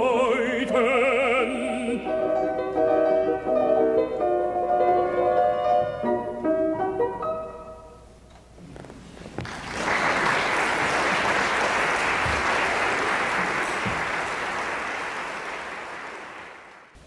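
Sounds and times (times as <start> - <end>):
audience applauding: 9.4 - 17.0.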